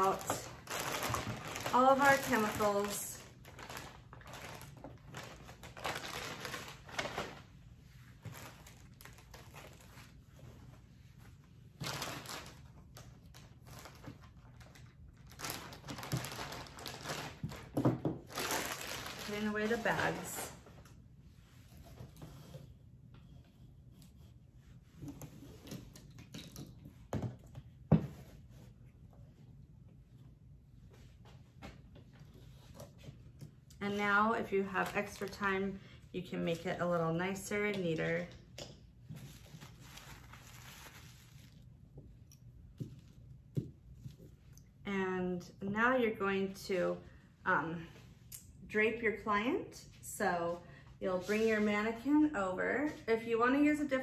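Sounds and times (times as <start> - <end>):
plastic bags crinkling: 0.0 - 7.5, 8.2 - 10.2, 11.8 - 20.6, 33.9 - 35.8, 39.2 - 41.6.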